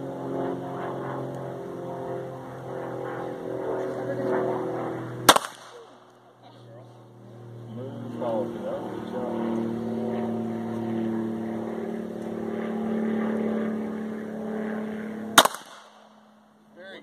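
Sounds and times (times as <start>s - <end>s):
low motor drone: 0.0s - 17.0s
pistol shot: 5.2s - 6.0s, 15.4s - 16.1s.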